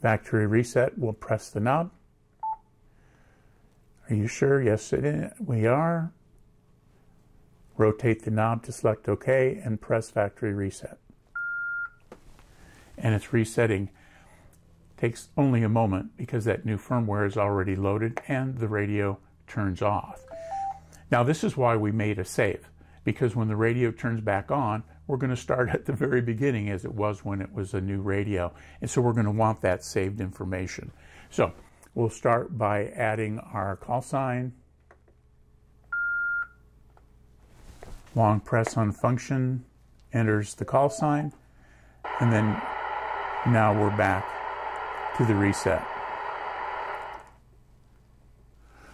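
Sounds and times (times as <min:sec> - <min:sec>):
radio transceiver beep: 0:20.2 - 0:20.8.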